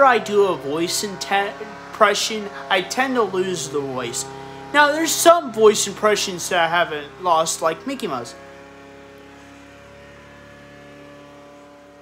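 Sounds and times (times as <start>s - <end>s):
steady hum of held tones: 0.0s - 12.0s.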